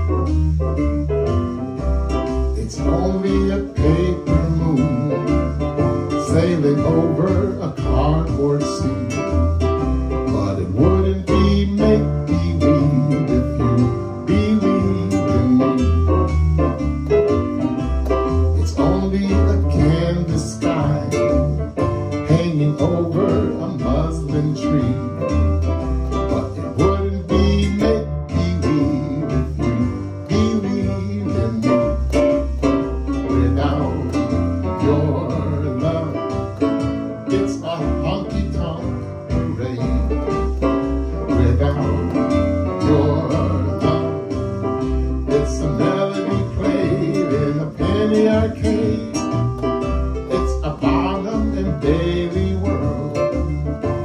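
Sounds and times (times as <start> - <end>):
electronic keyboard jazz: 0.0 - 54.0.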